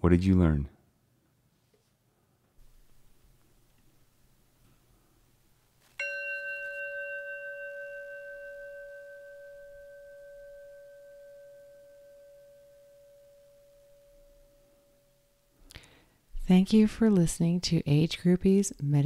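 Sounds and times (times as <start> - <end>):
meditation bell ringing: 6.0 - 15.6.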